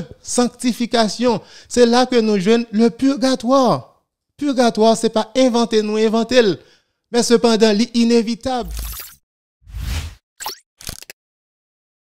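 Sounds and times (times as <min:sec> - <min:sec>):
whoosh: 0:09.7 - 0:10.2.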